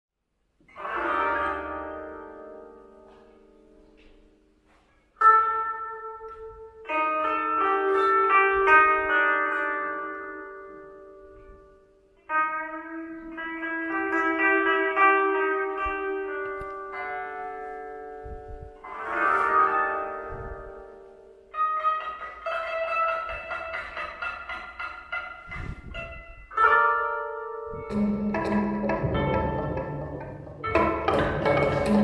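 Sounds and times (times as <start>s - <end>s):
zither plucked: 0.7s - 3.6s, 5.2s - 32.0s.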